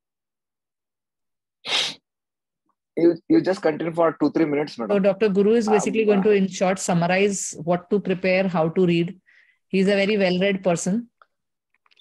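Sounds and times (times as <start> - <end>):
person breath burst: 1.6 - 2.0.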